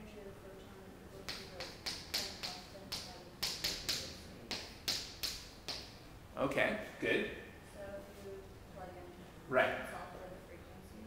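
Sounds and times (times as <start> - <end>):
chalk tapping on blackboard: 1.2 - 6.0.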